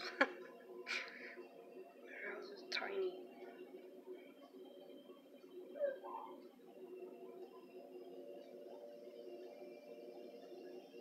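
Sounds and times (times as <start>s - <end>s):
faint machine hum: 0.0s - 11.0s
gliding squeak-like call: 5.7s - 6.5s.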